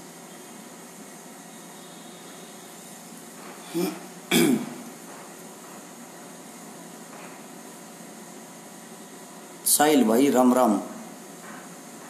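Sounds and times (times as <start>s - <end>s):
man clearing his throat: 3.6s - 4.8s.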